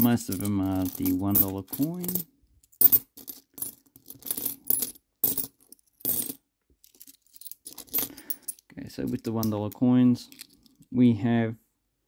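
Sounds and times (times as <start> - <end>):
coins clinking: 0.0 - 10.8.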